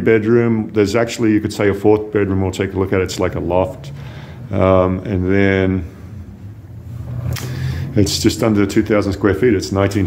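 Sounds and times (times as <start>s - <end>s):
low steady rumble: 0.0s - 10.0s
short breathy noise: 3.9s - 4.5s, 5.9s - 8.0s.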